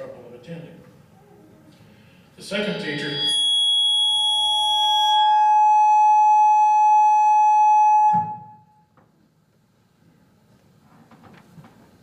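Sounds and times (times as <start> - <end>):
electronic buzzer tone: 3.0 - 8.8.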